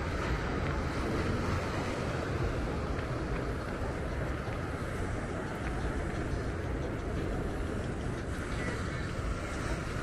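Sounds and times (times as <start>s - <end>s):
ocean surf breaking: 0.0s - 10.0s
wind rumble on microphone: 0.0s - 10.0s.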